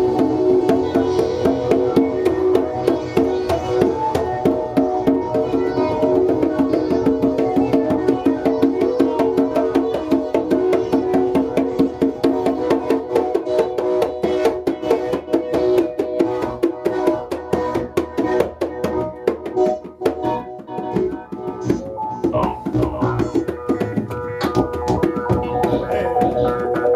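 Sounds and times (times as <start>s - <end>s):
congas played by hand: 0.0s - 26.9s
held synthesizer chords: 0.0s - 26.9s.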